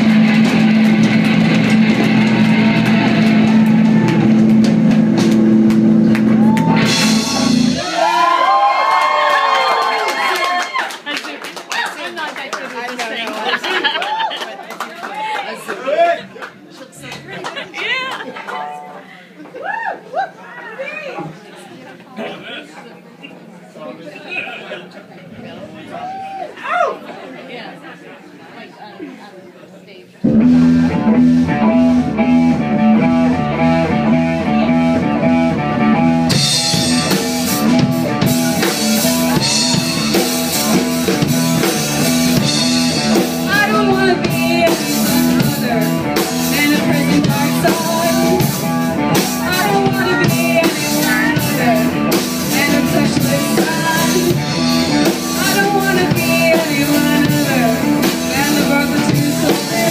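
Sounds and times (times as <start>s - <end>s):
electric bass and guitar riff: 0.0s - 7.9s, 30.2s - 59.9s
drums and cymbals: 0.0s - 8.2s, 36.2s - 59.9s
crowd chatter: 0.0s - 59.9s
woman singing: 43.4s - 54.5s, 55.3s - 59.9s.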